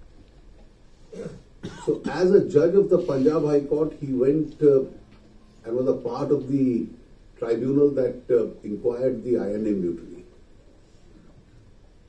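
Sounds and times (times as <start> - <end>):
person coughing: 1.1 - 2.4.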